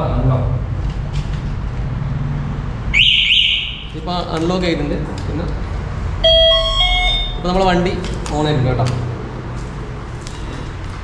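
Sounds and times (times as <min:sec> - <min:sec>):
rising electronic chirps: 0:06.2 - 0:07.5.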